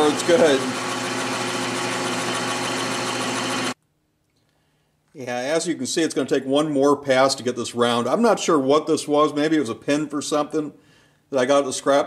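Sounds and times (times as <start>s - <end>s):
metal lathe running: 0.0s - 3.8s.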